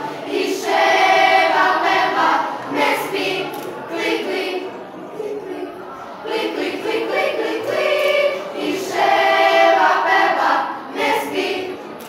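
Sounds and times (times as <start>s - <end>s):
girls' choir singing: 0.0s - 12.0s.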